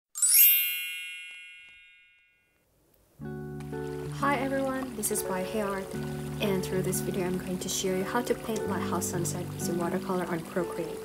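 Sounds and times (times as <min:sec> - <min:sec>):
sparkly chime effect: 0:00.2 - 0:02.6.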